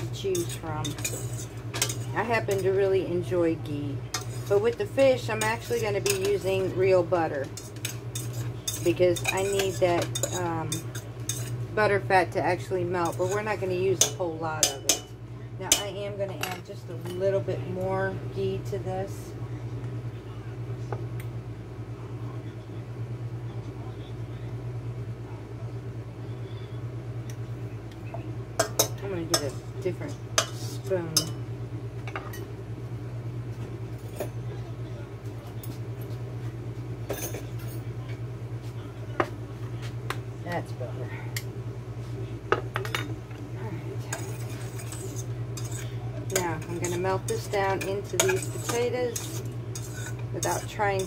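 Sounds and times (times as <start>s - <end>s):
metal utensils clinking on pans: 0.0s - 2.8s, 4.1s - 6.8s, 7.4s - 11.6s, 13.0s - 15.1s, 28.6s - 31.4s, 44.1s - 51.0s
spoon stirring in a pan: 0.0s - 2.8s, 4.1s - 6.8s, 7.4s - 11.6s, 13.0s - 17.2s, 28.6s - 31.4s, 44.0s - 51.0s
steady low hum: 0.0s - 51.0s.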